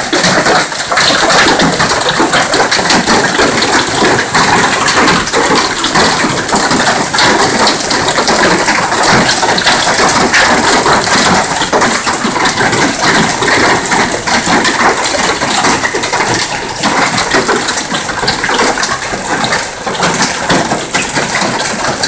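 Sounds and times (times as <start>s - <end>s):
hail and rain pelting down: 0.0s - 22.0s
hail ticking on car bodywork: 0.0s - 22.0s.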